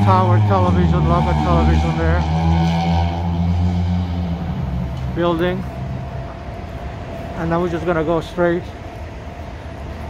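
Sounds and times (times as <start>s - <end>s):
vehicle engine droning: 0.0s - 10.0s.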